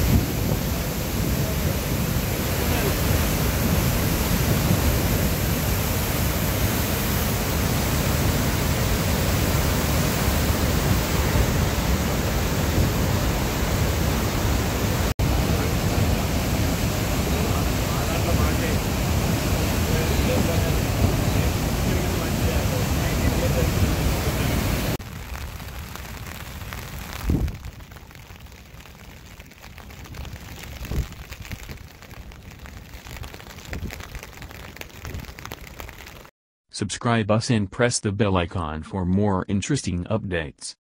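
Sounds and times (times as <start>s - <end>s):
rushing floodwater: 0.0s - 28.4s
rain hissing: 0.0s - 36.3s
wind buffeting microphone: 27.2s - 27.7s.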